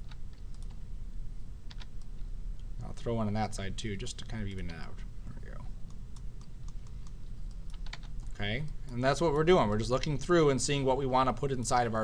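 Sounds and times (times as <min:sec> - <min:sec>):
keyboard and mouse clicks: 0:00.0 - 0:00.8, 0:01.7 - 0:02.7, 0:05.9 - 0:09.0
steady low hum: 0:00.0 - 0:12.0.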